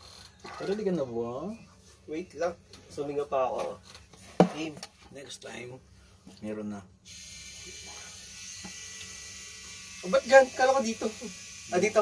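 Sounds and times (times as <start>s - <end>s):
tattoo machine buzzing: 7.0s - 12.0s.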